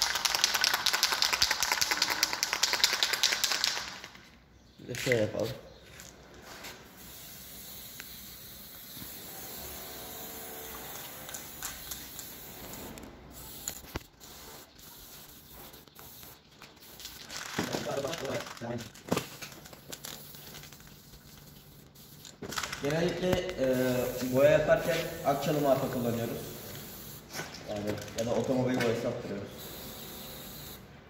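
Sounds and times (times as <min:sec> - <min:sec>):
aerosol spray can hissing: 0:07.0 - 0:17.3, 0:20.2 - 0:22.4, 0:23.6 - 0:27.3, 0:29.5 - 0:30.8.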